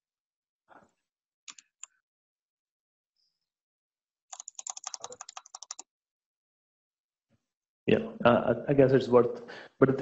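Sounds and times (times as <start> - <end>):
typing on computer keyboard: 4.3 - 5.8.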